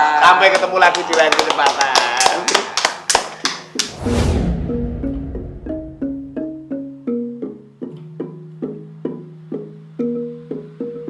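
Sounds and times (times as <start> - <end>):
hand claps: 0.3 - 4.0
outro music with bass swell: 3.9 - 6.9.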